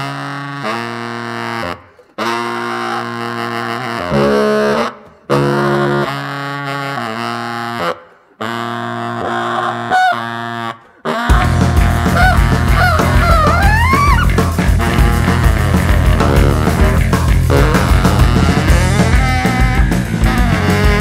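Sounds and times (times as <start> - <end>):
alto saxophone: 0.0 - 21.0
drums: 11.3 - 21.0
electric bass: 11.3 - 21.0.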